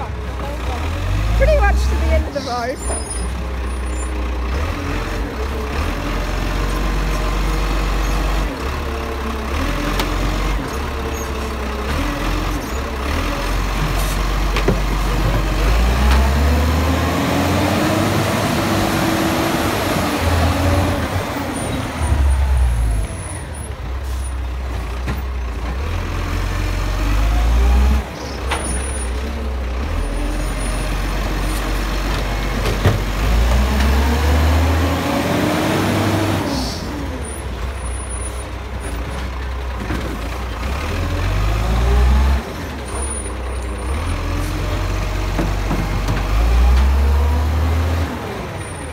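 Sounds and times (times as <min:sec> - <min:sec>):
garbage truck engine revving: 0:00.3 - 0:48.9.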